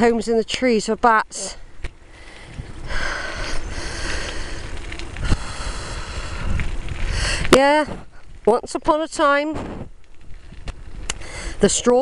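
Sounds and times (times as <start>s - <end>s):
bicycle tyre and frame noise: 0.0s - 12.0s
wind rumbling on microphone: 1.8s - 12.0s.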